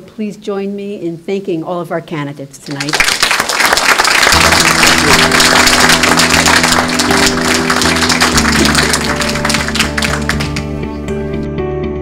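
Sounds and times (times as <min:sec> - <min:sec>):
audience applauding: 0:02.7 - 0:10.9
closing music: 0:03.8 - 0:11.6.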